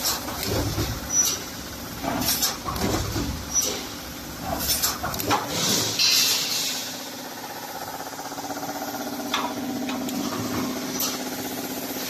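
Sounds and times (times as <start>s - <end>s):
welding machine humming and chattering: 0.0s - 12.0s.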